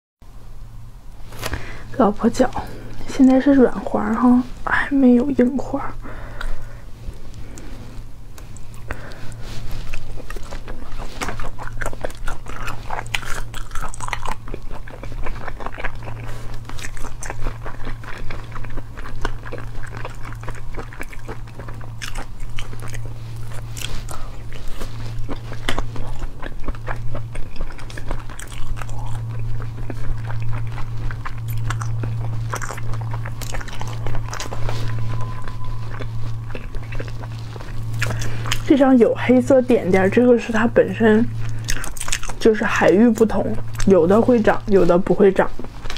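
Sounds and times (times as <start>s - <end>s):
steady low hum: 0.2s - 45.9s
biting and chewing: 5.2s - 45.9s.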